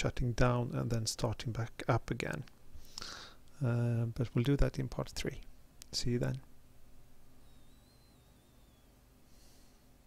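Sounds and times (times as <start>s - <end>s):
low steady hum: 0.0s - 10.0s
faint wavering high whine: 2.6s - 10.0s.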